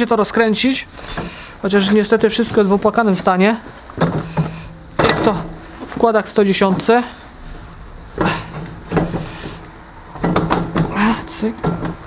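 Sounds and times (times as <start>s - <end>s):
metal clinks and scraping: 0.9s - 12.0s.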